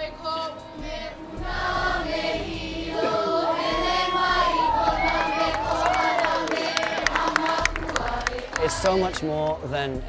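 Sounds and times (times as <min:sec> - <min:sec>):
group of voices singing: 0:00.0 - 0:09.5
crowd shouting and cheering: 0:02.9 - 0:08.8.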